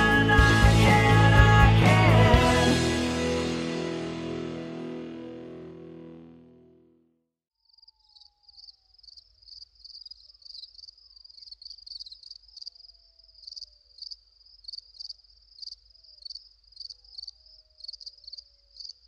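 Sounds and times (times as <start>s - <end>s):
crickets chirping: 7.6s - 19.0s.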